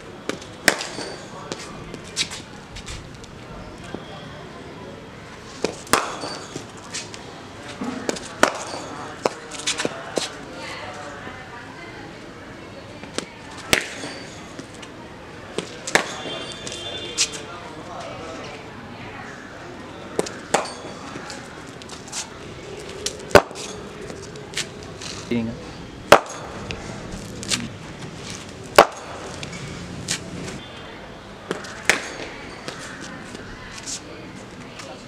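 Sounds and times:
bat striking ball crack: 0:00.3 - 0:01.6, 0:05.6 - 0:06.6, 0:08.0 - 0:09.4, 0:13.2 - 0:14.3, 0:15.6 - 0:16.5, 0:20.2 - 0:21.1, 0:23.3 - 0:23.8, 0:26.1 - 0:26.6, 0:28.7 - 0:29.4, 0:31.5 - 0:32.8
cricket bat knocks: 0:05.6 - 0:06.6, 0:26.1 - 0:26.6, 0:28.8 - 0:29.2.

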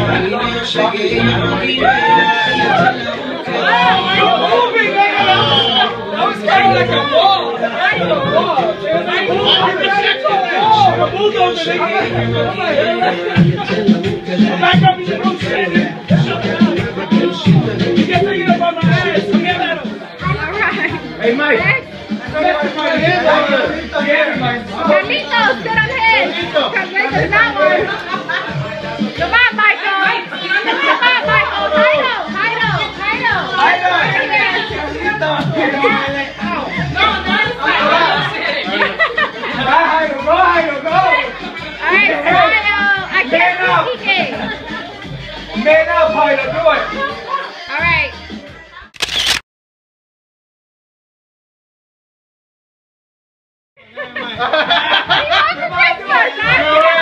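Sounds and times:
party voices: 0:00.0 - 0:49.3, 0:53.9 - 0:57.0
indistinct chatter: 0:00.0 - 0:49.4, 0:53.8 - 0:57.0
music: 0:00.0 - 0:49.4, 0:53.8 - 0:57.0
camera shutter: 0:49.0 - 0:49.4.

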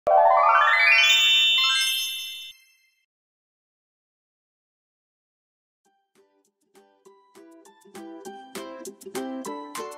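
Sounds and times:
bright bell-like chime: 0:00.1 - 0:03.1.

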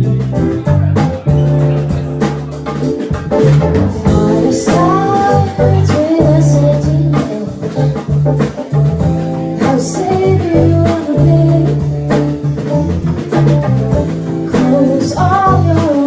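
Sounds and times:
drum kit beat: 0:00.0 - 0:16.0
electric bass guitar: 0:00.0 - 0:16.0
keyboard: 0:00.0 - 0:16.0
woman singing: 0:03.9 - 0:08.0, 0:09.5 - 0:12.7, 0:14.5 - 0:16.0.

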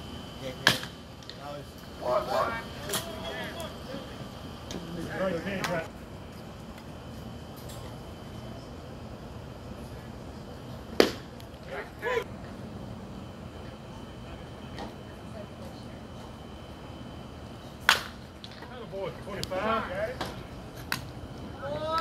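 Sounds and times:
low background murmur: 0:00.0 - 0:22.0
person shouting: 0:11.7 - 0:12.2, 0:21.6 - 0:22.0.

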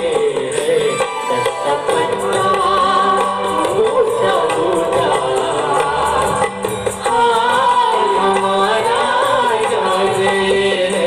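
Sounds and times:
live band playing instrumental: 0:00.0 - 0:11.0.

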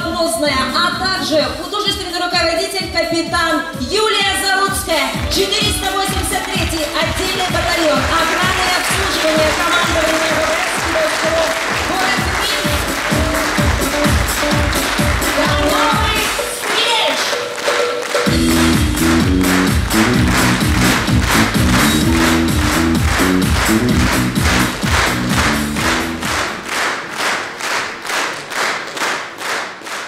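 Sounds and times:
loud music with bass line: 0:03.3 - 0:17.0, 0:18.3 - 0:26.7
audience clapping in unison: 0:05.1 - 0:30.0.

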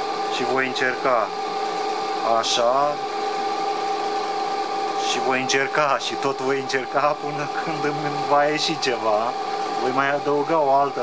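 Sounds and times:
electric motor whine: 0:00.0 - 0:11.0.

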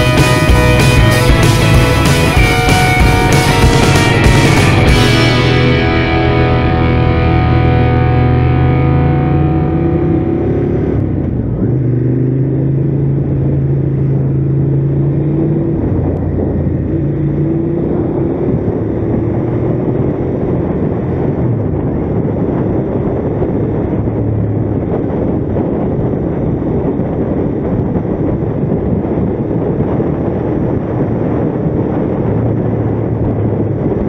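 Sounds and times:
background music: 0:00.0 - 0:11.0
motorcycle engine running: 0:00.0 - 0:34.0
wind noise: 0:00.0 - 0:34.0.

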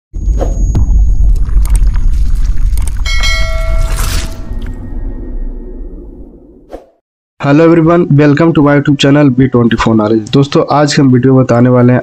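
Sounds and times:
bright bell-like chime: 0:03.0 - 0:05.6.

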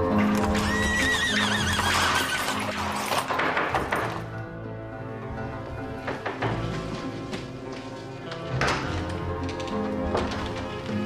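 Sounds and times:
background music: 0:00.0 - 0:11.0
horse whinnying: 0:00.2 - 0:03.2.

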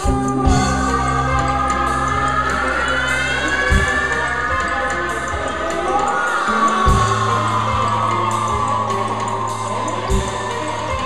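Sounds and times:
band playing loud live music: 0:00.0 - 0:11.0.

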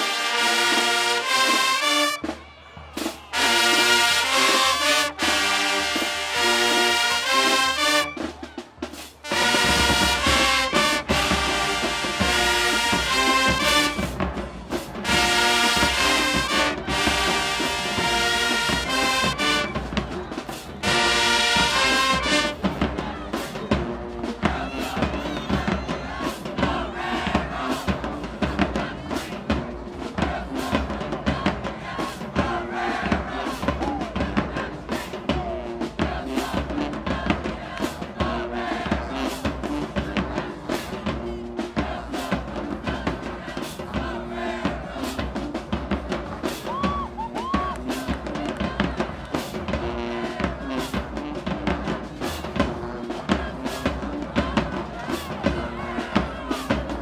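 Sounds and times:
brass chords blasting: 0:00.0 - 0:02.4, 0:03.3 - 0:08.4, 0:09.2 - 0:22.8, 0:34.9 - 0:42.3, 0:49.4 - 0:57.0
steady drum beat: 0:00.2 - 0:57.0.

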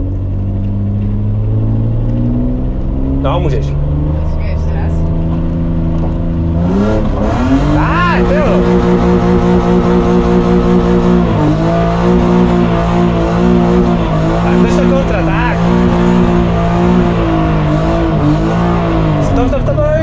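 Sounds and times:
car engine droning at high revs: 0:00.0 - 0:20.0.

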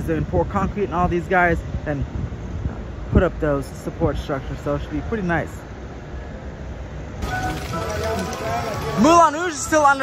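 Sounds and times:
low rumble with hiss: 0:00.0 - 0:10.0
street ambience: 0:00.0 - 0:10.0.

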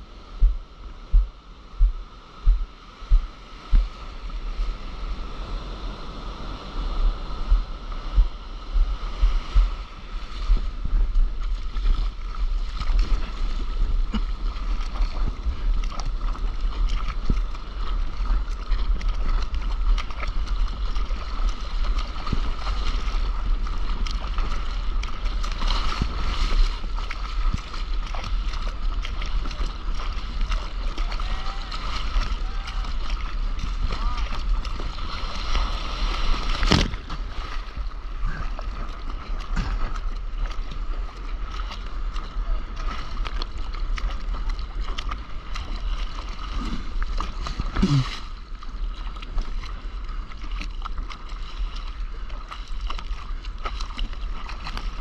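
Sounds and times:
wind buffeting microphone: 0:00.0 - 0:50.2
water rushing and splashing: 0:00.0 - 0:55.0.

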